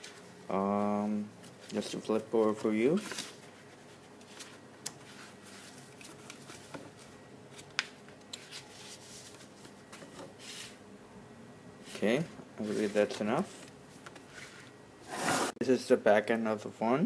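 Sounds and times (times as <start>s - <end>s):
paper pages being turned: 1.6s - 10.0s.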